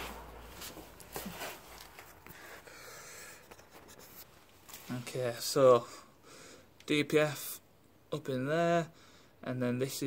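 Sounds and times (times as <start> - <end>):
rustling handling noise: 0.0 - 2.7, 3.3 - 5.4
low hum: 0.0 - 3.7.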